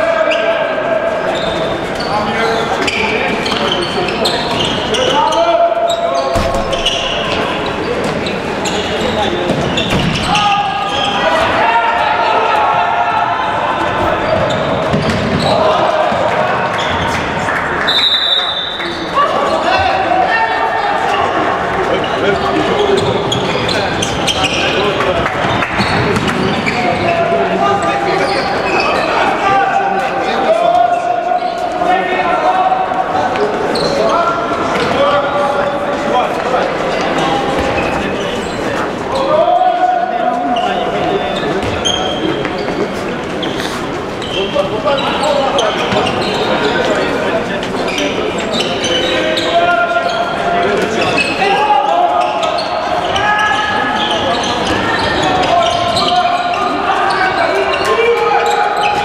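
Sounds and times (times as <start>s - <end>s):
people shouting in hall: 0.0s - 2.4s, 10.2s - 23.0s, 39.2s - 41.2s, 49.1s - 59.0s
ball bouncing on court: 14.3s - 15.5s, 25.8s - 26.8s.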